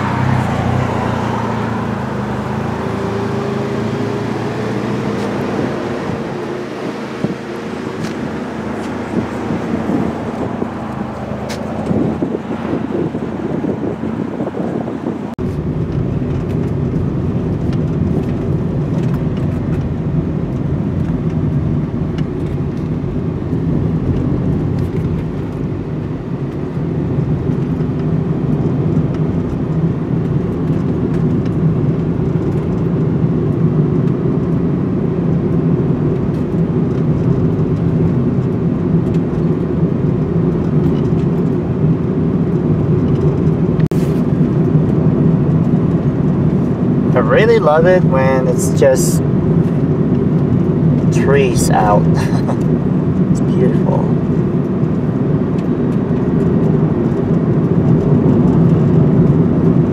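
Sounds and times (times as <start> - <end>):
wind buffeting microphone: 0.0 - 35.2
van cabin road rumble: 0.0 - 59.9.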